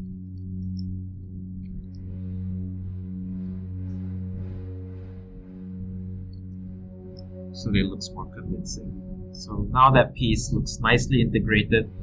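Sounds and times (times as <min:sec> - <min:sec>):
soft ambient music: 0:00.0 - 0:12.0.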